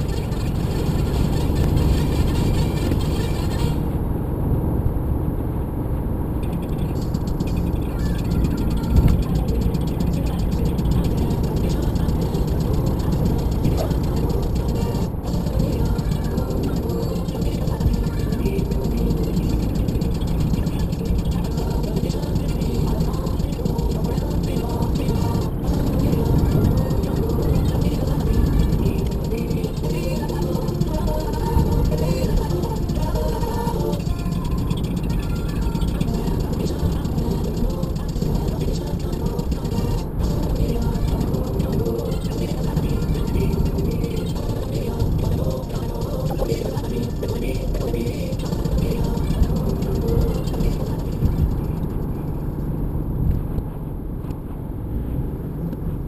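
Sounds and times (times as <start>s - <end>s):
music playing: 0.0s - 3.9s, 6.8s - 52.3s
engine and tyre rumble: 0.0s - 56.0s.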